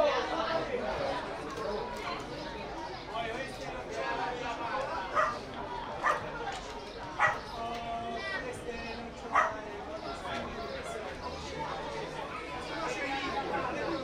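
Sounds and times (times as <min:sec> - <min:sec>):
murmur of spectators' chatter: 0:00.0 - 0:14.0
dog barking: 0:05.1 - 0:05.4, 0:06.0 - 0:06.3, 0:07.2 - 0:07.5, 0:09.3 - 0:09.6.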